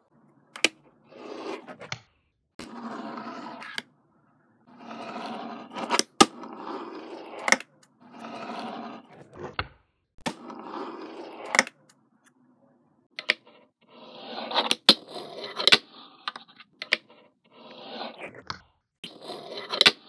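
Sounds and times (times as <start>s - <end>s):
fingerboard wheels rolling on table: 0.6s - 2.0s, 2.6s - 3.9s, 4.7s - 11.9s, 13.2s - 20.0s.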